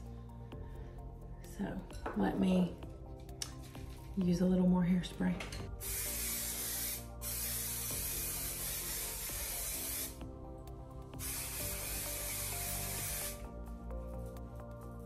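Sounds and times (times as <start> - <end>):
aerosol hairspray hissing: 5.8 - 10.2, 11.2 - 13.4.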